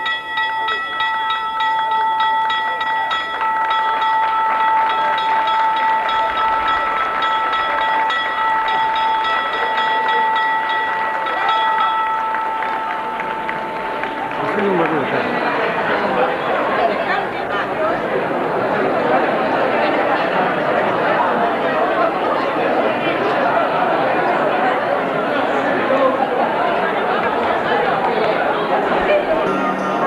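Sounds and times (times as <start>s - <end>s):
school bell ringing: 0.0s - 17.3s, 28.8s - 30.0s
crowd clapping along: 2.5s - 30.0s.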